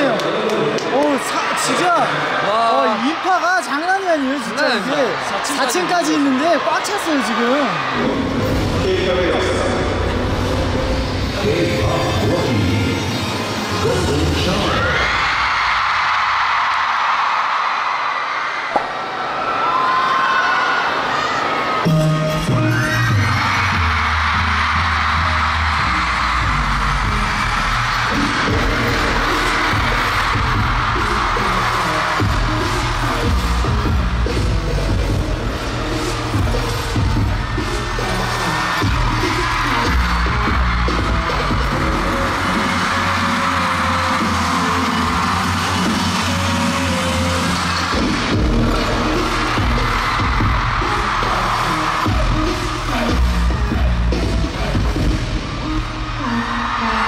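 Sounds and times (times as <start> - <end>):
crowd screaming: 0.0 - 57.0
pulsing dance music: 21.8 - 57.0.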